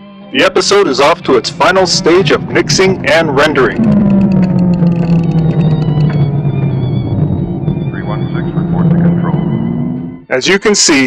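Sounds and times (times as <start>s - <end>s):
electronic tone sliding down: 1.0s - 10.2s
rapid faint ticking: 1.3s - 9.8s.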